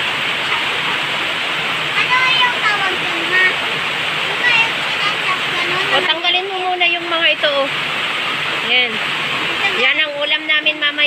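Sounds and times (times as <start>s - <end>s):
heavy rain pouring: 0.0s - 11.0s.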